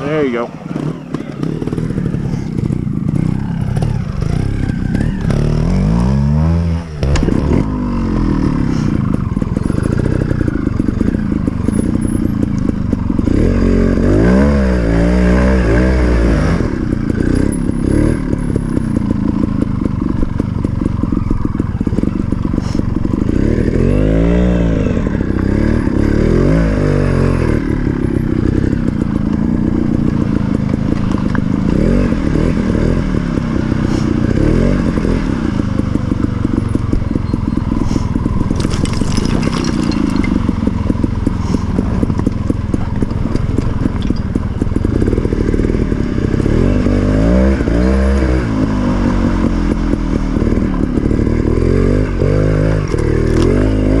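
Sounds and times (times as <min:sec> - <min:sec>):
two-stroke motorcycle engine blipping: 0:00.0 - 0:14.9, 0:15.6 - 0:54.0.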